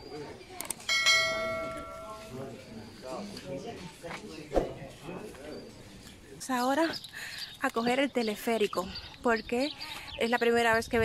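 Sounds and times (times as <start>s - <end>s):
notification bell chime: 0.9s - 2.3s.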